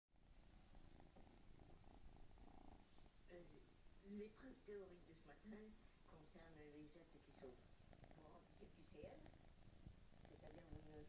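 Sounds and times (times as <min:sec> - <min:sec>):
cat purring: 0:00.2 - 0:11.0
woman speaking: 0:03.3 - 0:09.3, 0:10.2 - 0:11.0.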